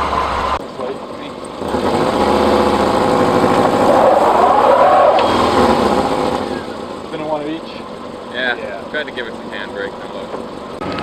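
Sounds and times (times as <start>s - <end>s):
car engine revving under load: 0.0s - 11.0s.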